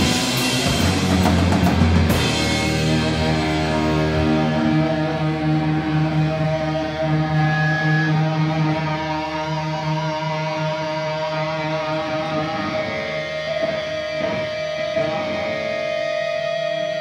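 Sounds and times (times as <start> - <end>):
distorted guitar chords: 0.0 - 17.0
heavy metal band playing live: 0.0 - 17.0.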